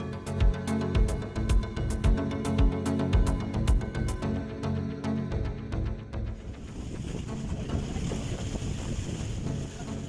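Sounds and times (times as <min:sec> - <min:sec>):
small boat engine running: 0:05.4 - 0:10.0
wind on microphone: 0:06.3 - 0:10.0.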